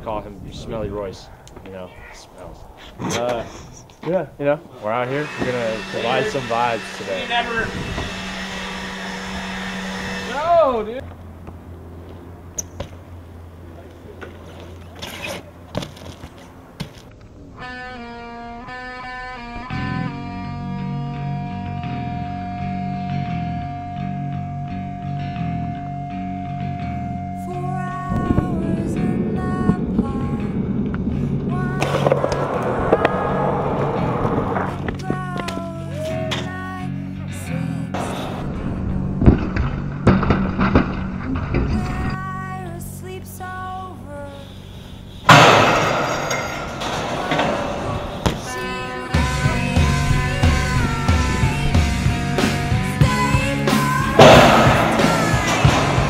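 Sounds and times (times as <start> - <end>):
bike grinding along a ledge: 4.8 - 11.1, 14.2 - 56.0
steady motor hum: 5.1 - 13.6
bike tyres rolling on asphalt: 10.9 - 17.5, 29.2 - 35.6, 38.0 - 41.7
background music: 17.6 - 39.2, 45.3 - 56.0.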